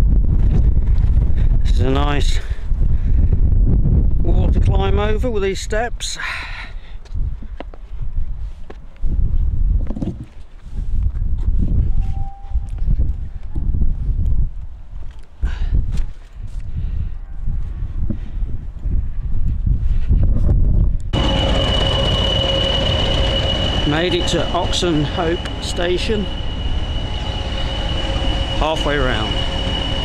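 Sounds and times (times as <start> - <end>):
wind buffeting microphone: 0.0 - 5.8, 6.8 - 30.0
diesel locomotive engine whining: 21.1 - 30.0.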